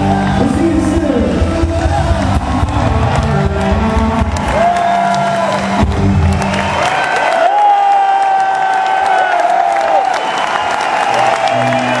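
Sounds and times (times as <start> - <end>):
rock band playing: 0.0 - 7.0
crowd applauding and cheering: 0.0 - 12.0.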